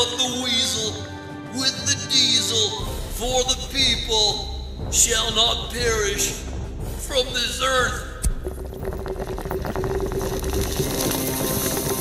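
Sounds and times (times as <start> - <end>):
rapid uneven crackling: 8.5 - 12.0.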